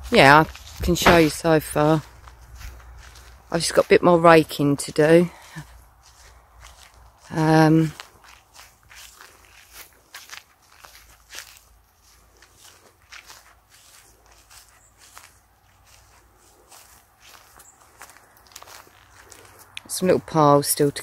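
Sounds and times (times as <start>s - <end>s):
scratchy crunching on soil: 0.0s - 21.0s.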